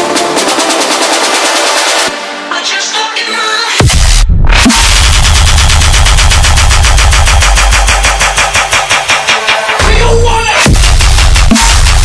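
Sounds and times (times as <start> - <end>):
electronic dance music build-up: 0.0 - 12.0.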